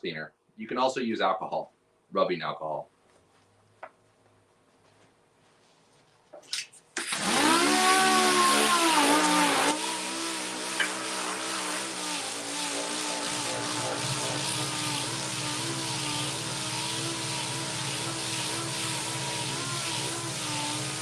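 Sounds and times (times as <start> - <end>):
orbital sander whining: 7.0 - 21.0.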